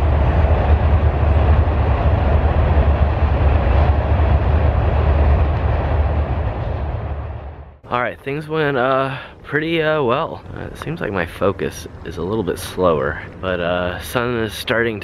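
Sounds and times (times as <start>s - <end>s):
freight train rumbling on rails: 0.0s - 8.0s.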